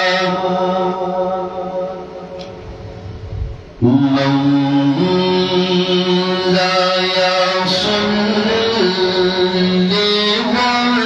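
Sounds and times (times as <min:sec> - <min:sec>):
man chanting into microphone: 0:00.0 - 0:02.3, 0:03.8 - 0:11.0.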